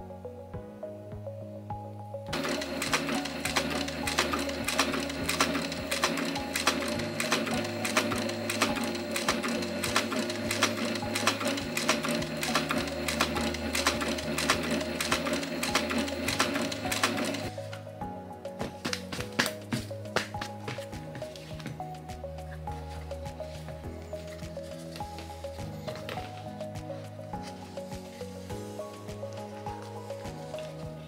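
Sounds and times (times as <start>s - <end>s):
sewing machine stitching: 2.3s - 17.5s.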